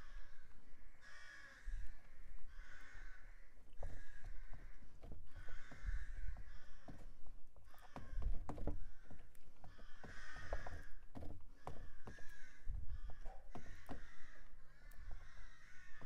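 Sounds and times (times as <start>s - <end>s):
crow cawing: 0.0s - 16.0s.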